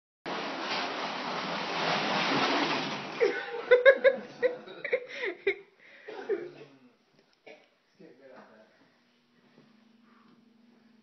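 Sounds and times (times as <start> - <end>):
casters rolling on tiled floor: 0.3 - 4.2.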